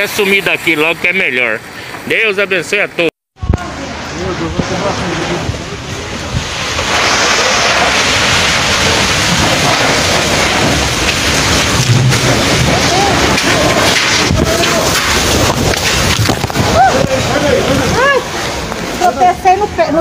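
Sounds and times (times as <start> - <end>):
driving rain: 0.0 - 20.0
strong wind: 3.4 - 20.0.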